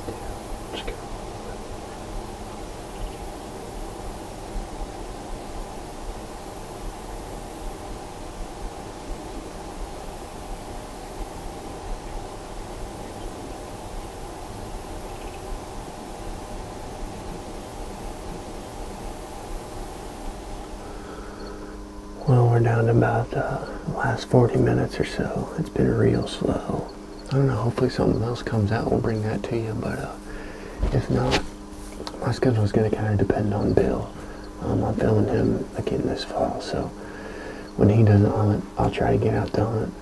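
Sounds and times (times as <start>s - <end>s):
outdoor field hiss: 0.0s - 40.0s
high-pitched insect trilling: 0.1s - 22.6s.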